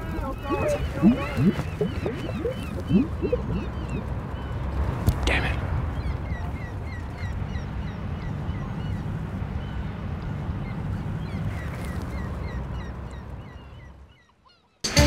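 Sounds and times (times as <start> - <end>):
steady low rumble: 0.0 - 14.0
small birds chirping: 0.0 - 14.9.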